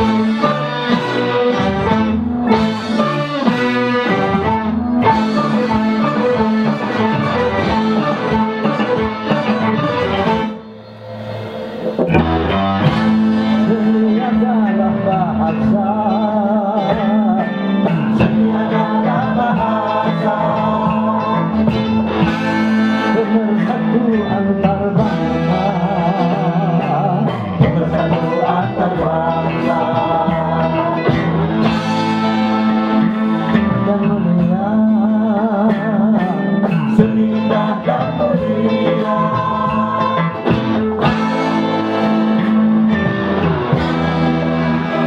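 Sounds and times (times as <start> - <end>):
band playing: 0.0 - 45.0
electric guitar vibrato melody: 0.0 - 45.0
person singing: 12.2 - 42.4.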